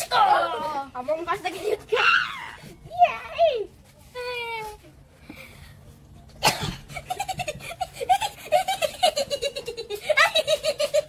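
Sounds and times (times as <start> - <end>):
children laughing: 6.5 - 11.0.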